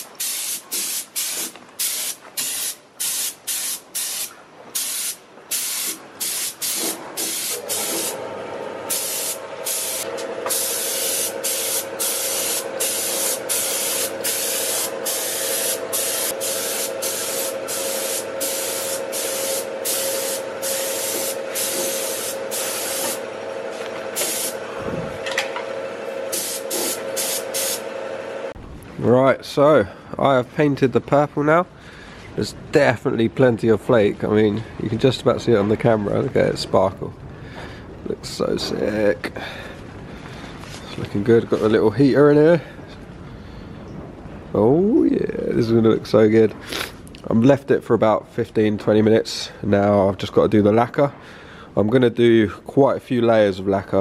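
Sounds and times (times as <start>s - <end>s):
paint spray gun hissing: 0.0s - 8.2s, 8.9s - 23.2s, 23.8s - 24.6s, 26.3s - 27.9s
steady hum: 5.1s - 28.9s.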